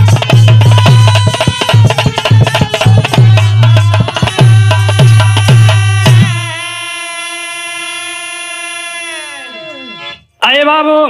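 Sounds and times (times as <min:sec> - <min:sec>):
man singing long note: 0:04.2 - 0:10.1.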